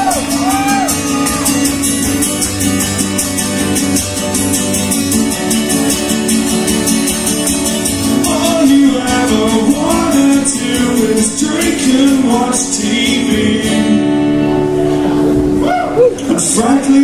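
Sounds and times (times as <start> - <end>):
acoustic guitar strumming: 0.0 - 17.0
person singing: 8.1 - 14.6.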